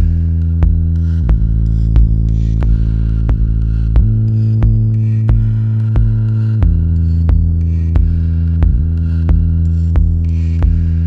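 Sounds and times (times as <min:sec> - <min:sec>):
low bass drone: 0:00.0 - 0:11.0.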